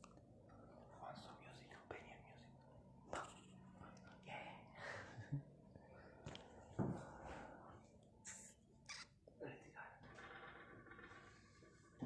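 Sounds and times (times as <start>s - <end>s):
faint whispering: 0.7s - 4.8s, 9.4s - 10.1s.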